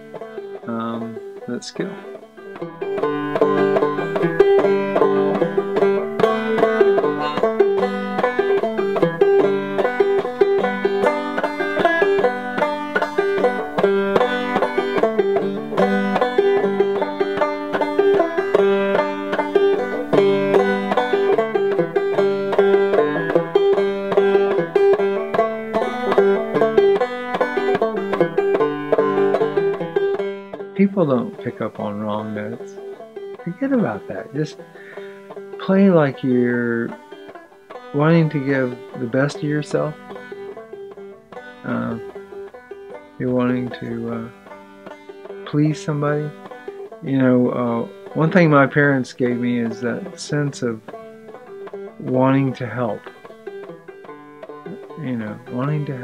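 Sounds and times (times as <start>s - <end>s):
banjo playing: 0.0s - 56.0s.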